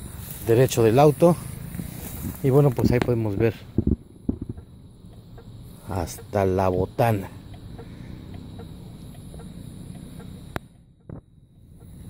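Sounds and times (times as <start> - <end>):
night insects chirring: 0.0 - 12.0
soft low knocks: 2.8 - 5.5.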